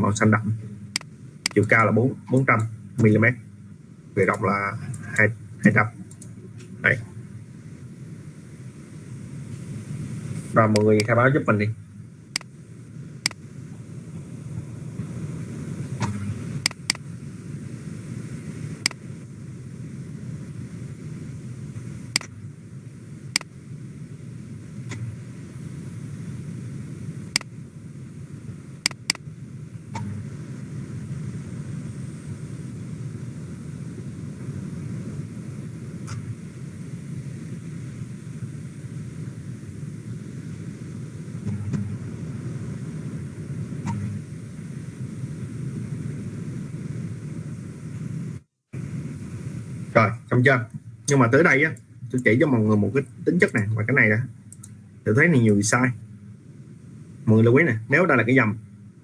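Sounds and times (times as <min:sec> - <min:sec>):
low background rumble: 0:00.0 - 0:59.0.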